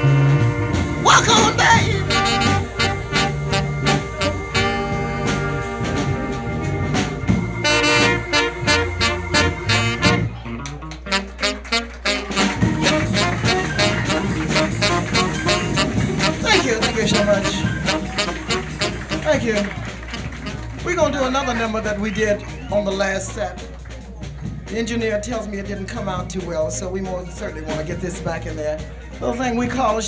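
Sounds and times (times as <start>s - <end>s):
live soul band instrumental: 0.0s - 22.7s
regular drum beat: 0.0s - 28.9s.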